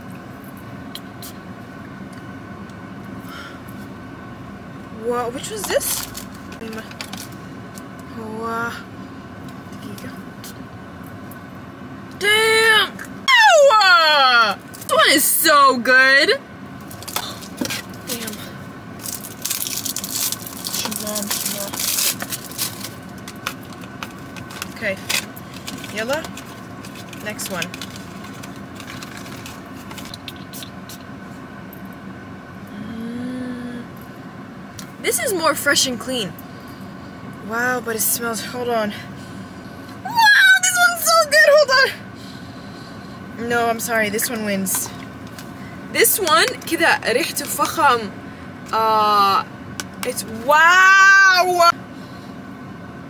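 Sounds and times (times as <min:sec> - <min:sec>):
car cabin hum: 0:00.0 - 0:32.6, 0:43.3 - 0:51.7
packaging clicks and rustles: 0:19.1 - 0:30.4
woman humming: 0:32.7 - 0:33.9.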